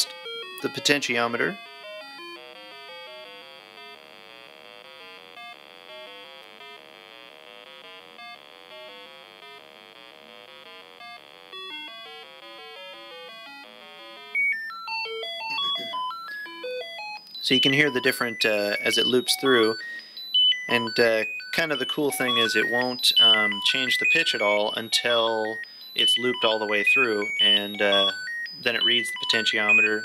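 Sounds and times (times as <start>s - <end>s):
fast electronic beeps: 0.0s - 3.2s, 14.3s - 30.0s.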